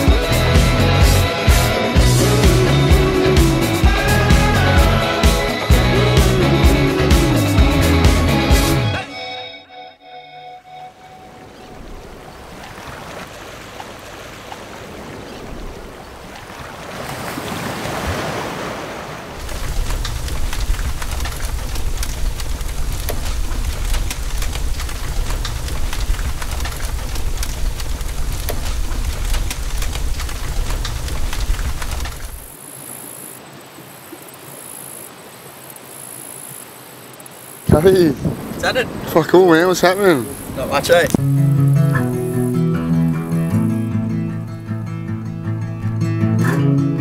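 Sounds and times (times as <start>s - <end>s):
surf washing on shore: 0.0s - 8.8s, 10.6s - 41.2s
bonfire crackling: 19.1s - 32.7s, 35.9s - 44.8s.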